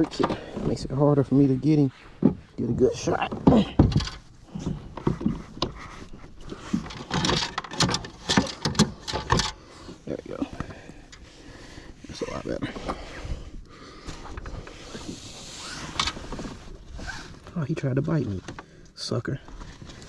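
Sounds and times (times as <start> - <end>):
knocks and clatter of handling: 0.0 - 1.0, 2.1 - 11.2, 18.2 - 18.7.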